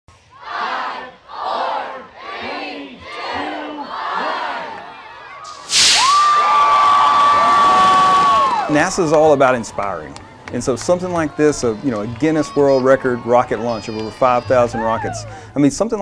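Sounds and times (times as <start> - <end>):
crowd counting in unison: 0.1 - 5.4
crowd cheering and whooping: 4.7 - 15.5
rocket motors igniting rush: 5.5 - 6.6.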